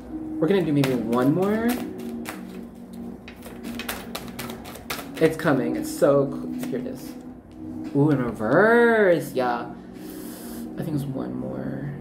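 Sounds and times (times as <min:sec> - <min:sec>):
faint background music: 0:00.0 - 0:12.0
cards being shuffled: 0:00.6 - 0:05.6.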